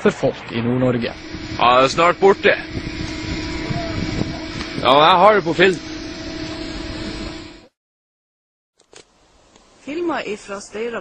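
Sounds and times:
steady rushing noise: 0.9s - 7.7s
faint steady hum: 1.0s - 7.7s.

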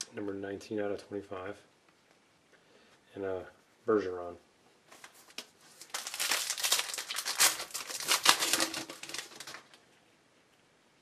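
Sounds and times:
foil wrapper tearing and crinkling: 5.4s - 9.8s.

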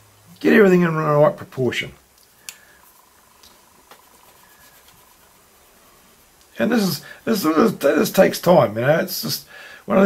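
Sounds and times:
faint steady whine: 0.0s - 10.0s.

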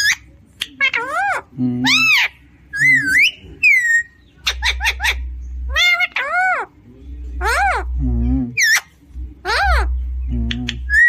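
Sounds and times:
parakeet whistling and chattering: 0.0s - 11.0s.

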